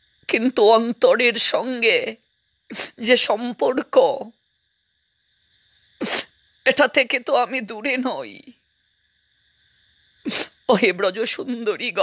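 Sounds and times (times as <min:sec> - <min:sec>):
person reciting speech: 0:00.3 - 0:02.2, 0:02.8 - 0:04.3, 0:06.7 - 0:08.5, 0:10.7 - 0:12.0
breathy vocal burst: 0:10.3 - 0:10.6.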